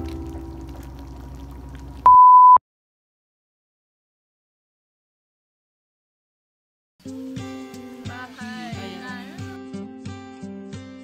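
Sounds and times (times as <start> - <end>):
sauce bubbling in a wok: 0.0 - 2.1
background music: 7.0 - 11.0.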